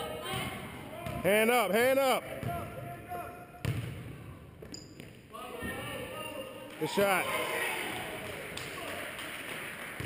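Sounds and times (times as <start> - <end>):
basketball bouncing on court: 0.3 - 1.3, 3.6 - 5.8.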